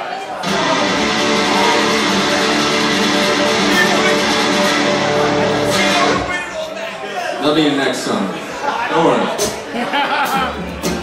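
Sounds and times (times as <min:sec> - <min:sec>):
acoustic guitar strumming: 0:00.4 - 0:06.4.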